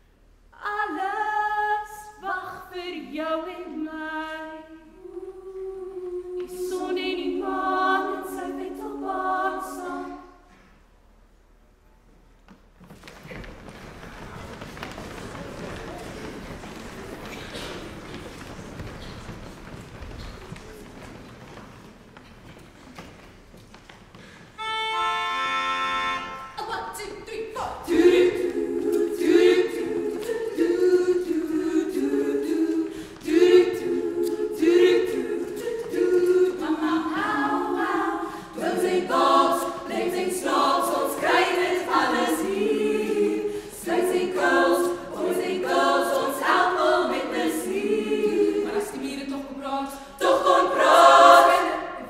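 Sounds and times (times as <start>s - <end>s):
women's choir singing in harmony: 0.6s - 10.8s, 27.4s - 52.0s.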